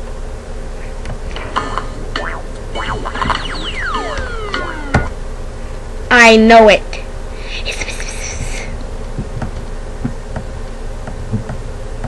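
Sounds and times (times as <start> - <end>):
low background buzz: 0.0 - 12.0.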